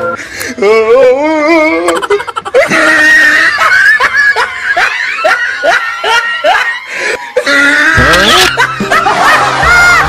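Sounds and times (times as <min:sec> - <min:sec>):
high-pitched laughter: 0:01.6 - 0:10.0.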